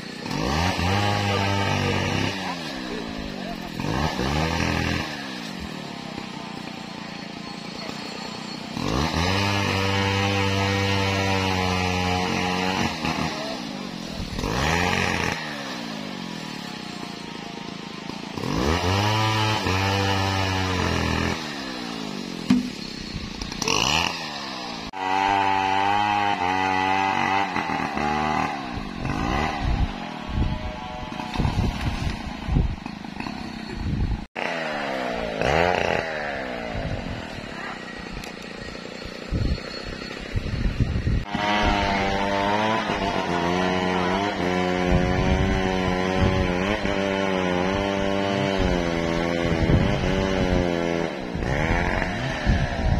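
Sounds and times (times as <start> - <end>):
chainsaw running: 0.0 - 52.9.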